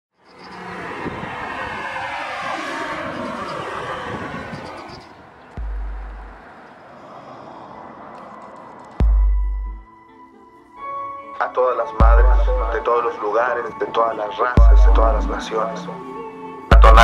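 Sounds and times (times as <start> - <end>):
loud rushing noise: 0.5 - 7.0
deep bass boom: 5.6 - 6.4, 9.0 - 9.8, 12.0 - 12.6, 14.6 - 15.3.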